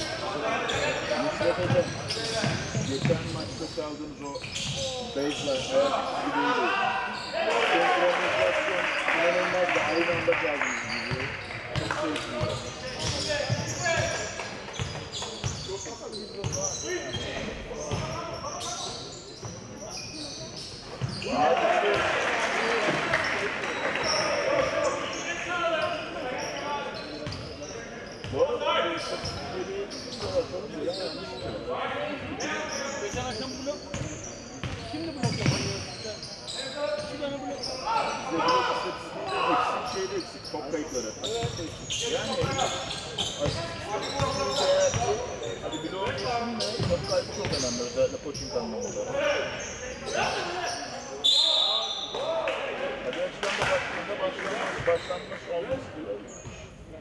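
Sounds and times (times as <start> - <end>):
players calling out: 0.0 - 36.3
basketball bouncing on court: 17.9 - 18.2, 33.9 - 35.8, 46.0 - 47.6.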